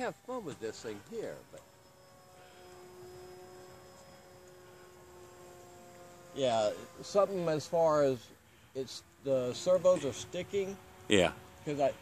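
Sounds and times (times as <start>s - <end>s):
model airplane motor drone: 0.0s - 12.0s.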